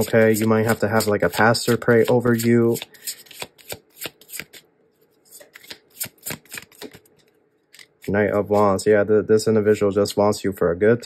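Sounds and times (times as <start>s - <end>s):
cards being shuffled: 0.0s - 4.6s, 5.3s - 8.8s.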